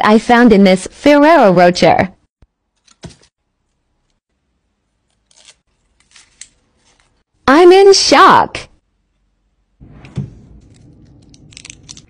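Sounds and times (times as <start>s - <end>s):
foil wrapper rustling: 10.7s - 12.0s.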